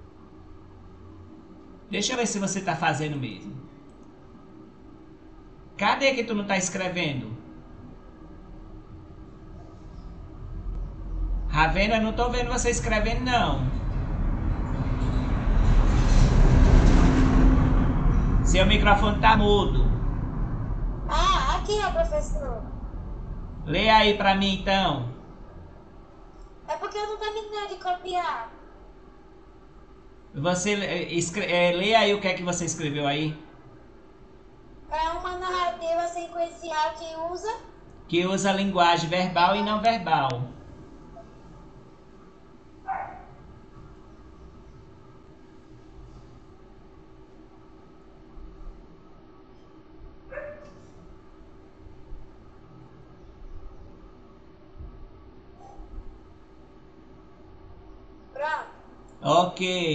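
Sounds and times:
faint hum: 0.0s - 59.9s
loud steady rumbling: 4.4s - 48.9s.

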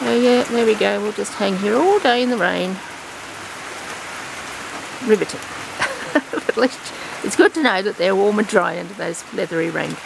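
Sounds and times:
heavy rain: 0.0s - 10.0s.

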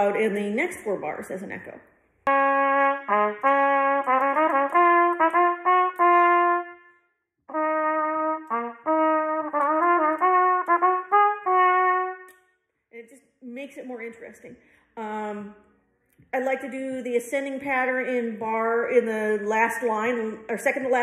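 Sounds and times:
trumpet playing: 2.2s - 12.5s.

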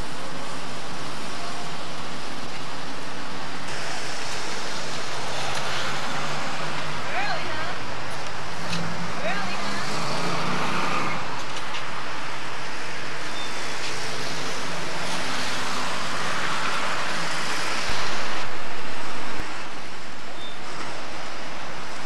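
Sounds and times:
traffic noise: 0.0s - 22.0s.

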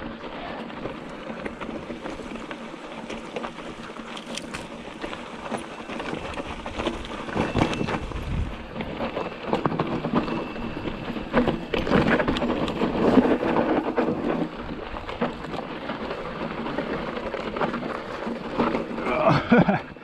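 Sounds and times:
tyres crunching over gravel: 0.0s - 19.8s
bike clicks and rattles: 0.0s - 20.0s.

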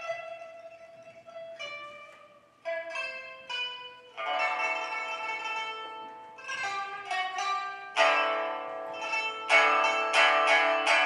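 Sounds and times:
light pipa plucks: 0.0s - 11.0s
pipa strummed chords: 0.0s - 11.0s.

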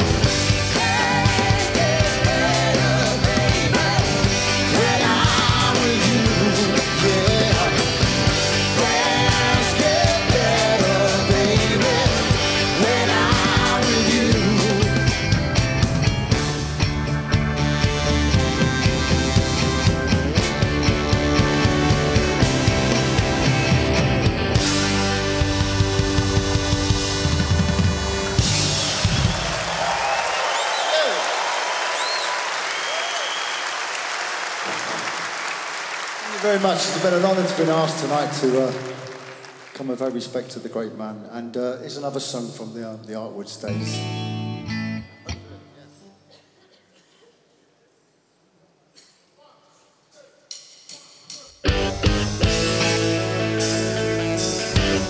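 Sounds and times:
audience applauding and cheering: 0.0s - 6.1s, 27.3s - 40.4s
rock band playing: 0.0s - 30.0s, 51.6s - 55.0s.

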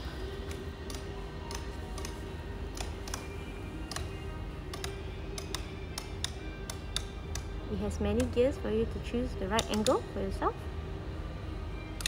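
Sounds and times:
background music: 0.0s - 12.0s
ratchet hinge clicking: 0.4s - 3.3s, 3.9s - 7.5s, 9.6s - 10.0s.

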